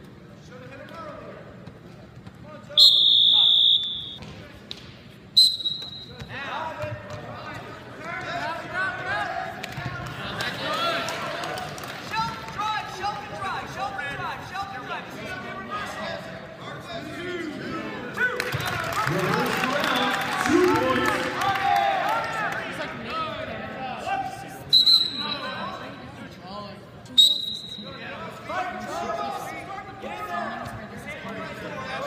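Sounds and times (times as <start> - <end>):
referee whistle blasts: 2.8 - 4.2, 5.4 - 6.3, 24.7 - 25.6, 27.1 - 28.0.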